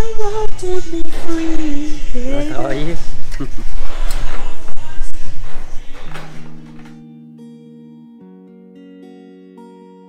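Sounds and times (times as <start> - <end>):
acoustic guitar music: 0.0 - 10.0.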